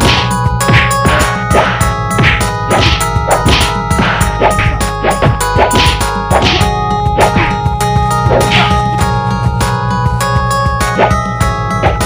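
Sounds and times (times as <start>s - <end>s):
punch and kick hits: 0.0s - 7.6s
music soundtrack: 0.0s - 12.0s.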